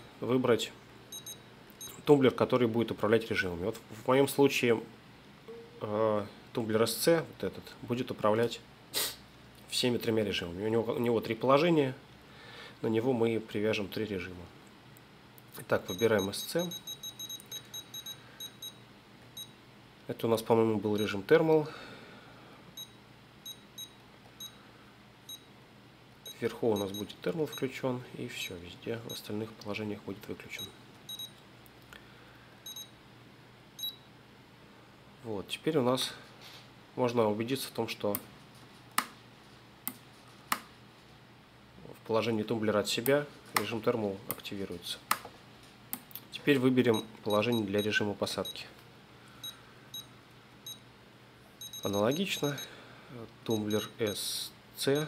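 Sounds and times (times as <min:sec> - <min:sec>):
short high key beeps: 0:01.1 - 0:02.0, 0:05.5 - 0:05.8, 0:15.8 - 0:18.8, 0:30.6 - 0:31.4, 0:32.7 - 0:32.9, 0:33.8 - 0:34.1, 0:51.6 - 0:52.7, 0:53.5 - 0:54.2
short high beeps: 0:05.5 - 0:05.8, 0:15.9 - 0:18.8.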